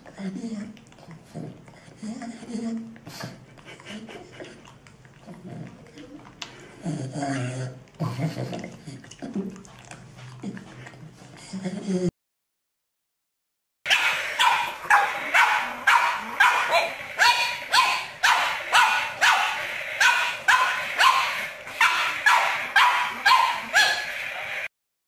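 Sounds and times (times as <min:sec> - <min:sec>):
dog barking in high barks: 0:13.9 - 0:24.2.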